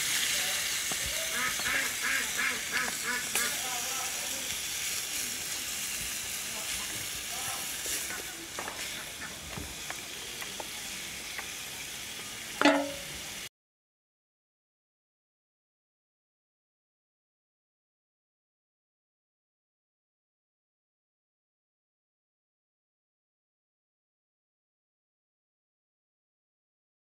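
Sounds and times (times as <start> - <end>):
curry sizzling and bubbling in pot: 0.0 - 13.5.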